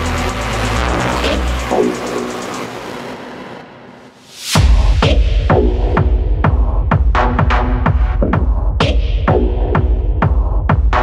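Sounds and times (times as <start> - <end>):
hissy synth wash: 0.0 - 4.6
techno track: 0.0 - 11.0.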